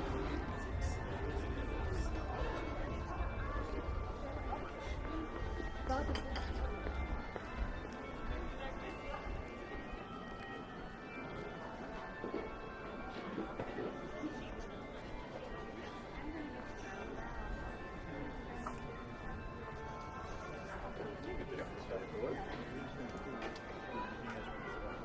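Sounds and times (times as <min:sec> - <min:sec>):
background music: 0:00.0 - 0:25.0
passersby talking: 0:00.0 - 0:25.0.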